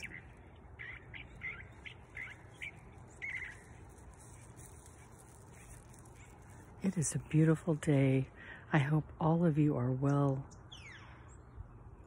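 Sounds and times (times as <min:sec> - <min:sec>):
pet bird calling: 0:00.0 - 0:06.7.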